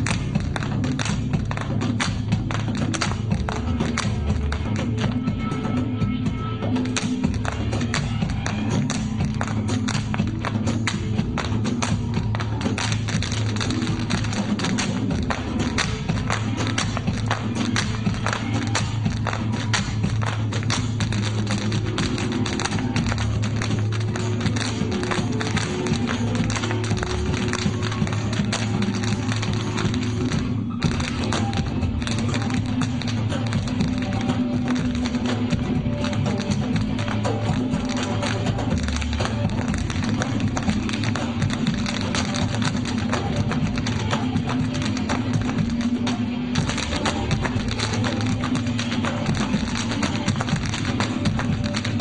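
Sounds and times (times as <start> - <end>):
dance music: 0.0 - 52.0
hard shoes tapping on stage: 0.0 - 52.0.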